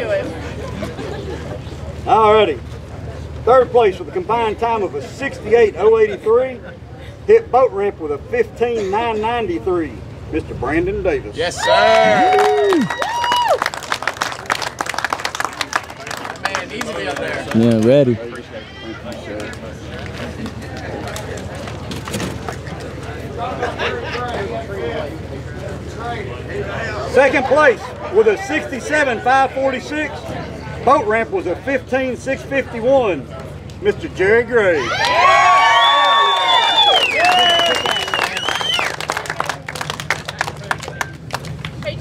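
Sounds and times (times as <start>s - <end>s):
people talking in background: 0.0s - 12.9s, 13.8s - 42.0s
outdoor background noise: 0.0s - 42.0s
people clapping: 11.7s - 23.0s, 35.0s - 42.0s.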